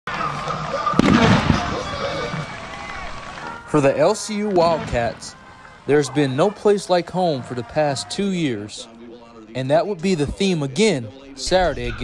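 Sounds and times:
crowd noise: 0:00.1 - 0:12.0
voices: 0:00.1 - 0:12.0
pyrotechnic bang: 0:01.0 - 0:01.9
loud burst of noise: 0:01.0 - 0:02.6.

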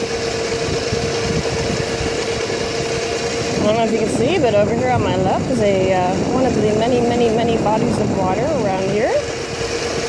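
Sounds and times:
electric scooter motor whine: 0:00.0 - 0:10.0
wind rushing over microphone: 0:00.0 - 0:10.0.

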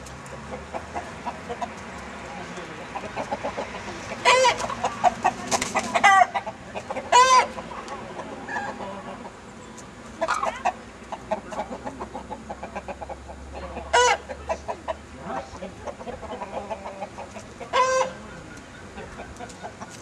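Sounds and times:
chickens clucking: 0:00.0 - 0:20.0
loud drawn-out chicken calls: 0:04.2 - 0:07.6, 0:16.5 - 0:20.0.

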